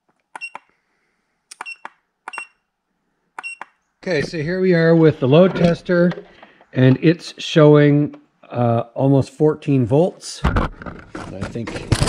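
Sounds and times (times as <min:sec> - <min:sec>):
keypad beeping: 0:00.4 - 0:00.7, 0:01.6 - 0:02.6, 0:03.4 - 0:03.8.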